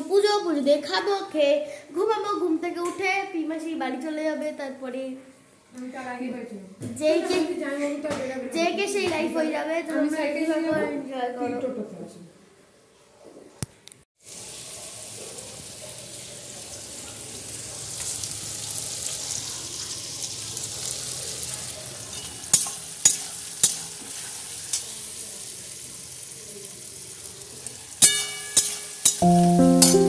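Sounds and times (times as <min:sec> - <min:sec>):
onions frying in oil: 0:14.2 - 0:30.0
piano music: 0:29.2 - 0:30.0.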